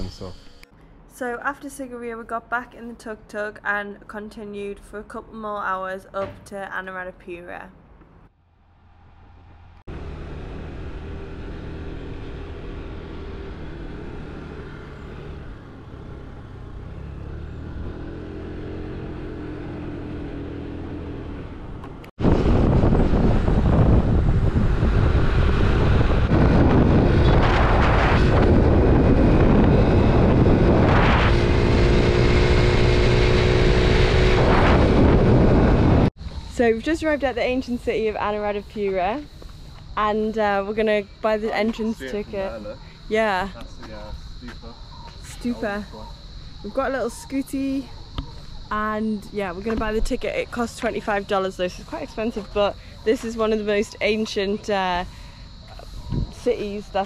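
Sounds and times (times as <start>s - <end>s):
motor scooter engine: 9.9s - 27.3s, 40.0s - 54.7s
wind rushing over microphone: 21.4s - 39.2s, 46.5s - 57.0s
small engine running: 41.9s - 42.8s.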